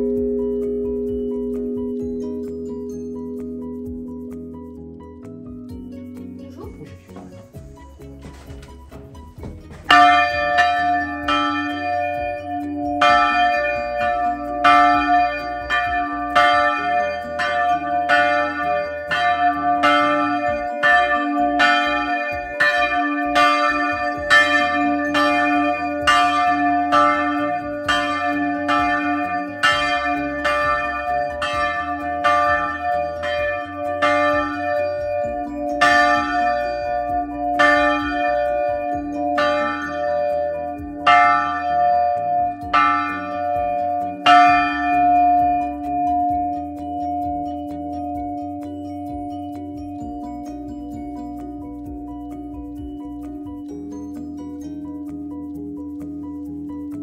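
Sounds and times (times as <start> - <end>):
church bell ringing: 9.9 - 51.6.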